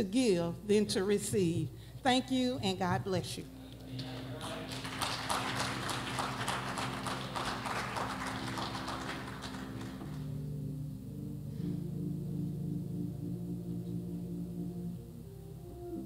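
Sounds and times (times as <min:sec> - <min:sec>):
sustained keyboard chords: 0:00.0 - 0:16.0.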